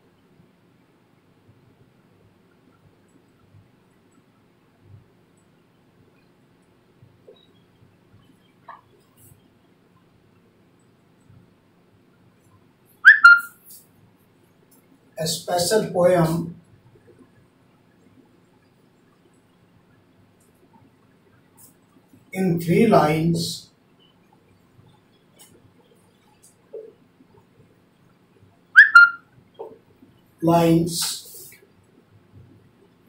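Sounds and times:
high-pitched whistle-like squeak: 13.0 - 13.6, 28.8 - 29.2.

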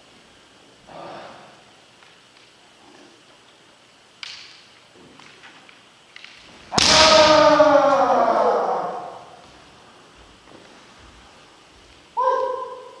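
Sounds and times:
bamboo swords clacking: 4.2 - 7.4
loud shout: 6.7 - 9.4, 12.2 - 13.0.

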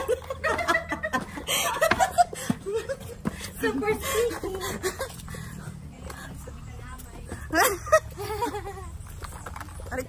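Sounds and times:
woman laughing: 0.0 - 5.4, 7.5 - 9.0.

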